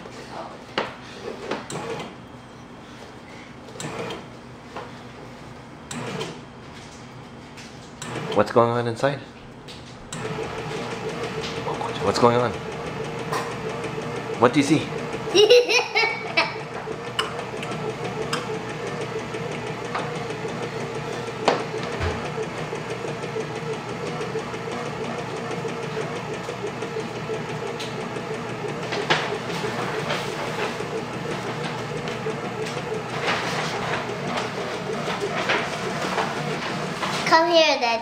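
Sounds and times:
bread maker motor humming: 0:00.0 - 0:37.8.

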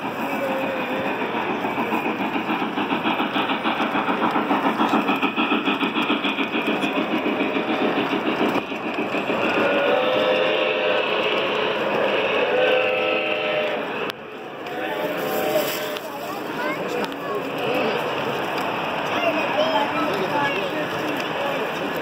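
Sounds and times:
model train wheels clattering: 0:00.0 - 0:22.0.

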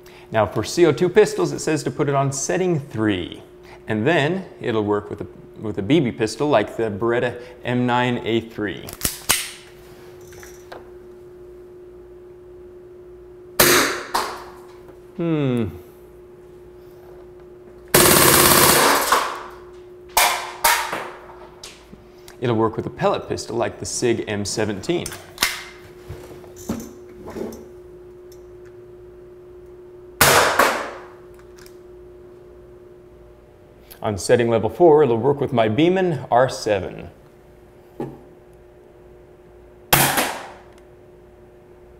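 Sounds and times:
air pistol shot: 0:13.6 - 0:14.4, 0:40.0 - 0:40.6.

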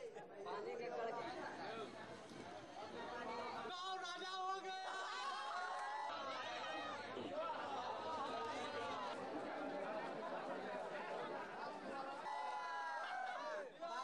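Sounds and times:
crowd chatter: 0:00.0 - 0:14.0.

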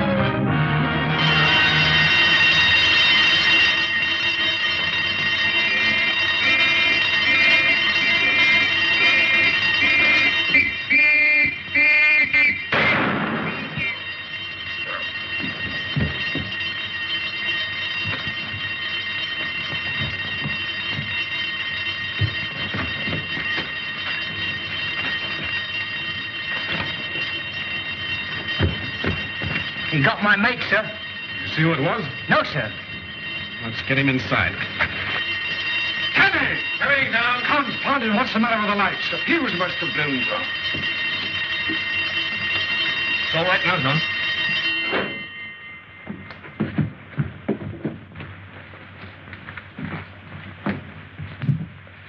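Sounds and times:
film music score: 0:00.0 - 0:04.0
burglar alarm ringing: 0:00.0 - 0:52.0
scattered knocks: 0:15.3 - 0:33.1, 0:46.0 - 0:48.3.

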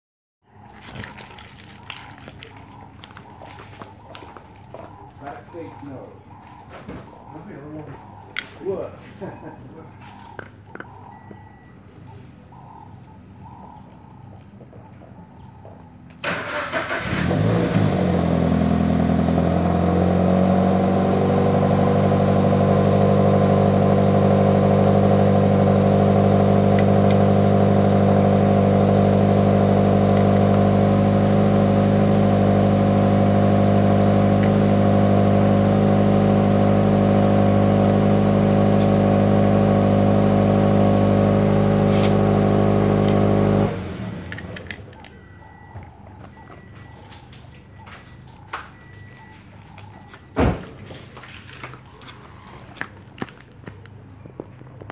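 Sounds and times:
car engine starting and idling: 0:15.9 - 0:47.8.

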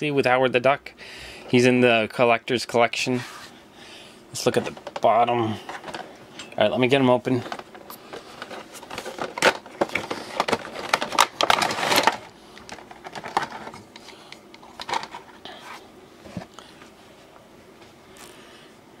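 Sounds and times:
plastic packaging crinkling: 0:07.3 - 0:15.4.

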